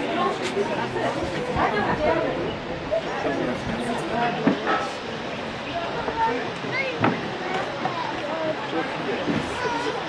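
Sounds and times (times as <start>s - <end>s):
people chattering: 0.0s - 10.0s
steady noisy background: 0.0s - 10.0s.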